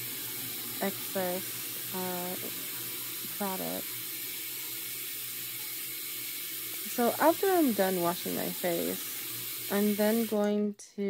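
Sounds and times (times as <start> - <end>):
faucet running into sink: 0.0 - 10.6.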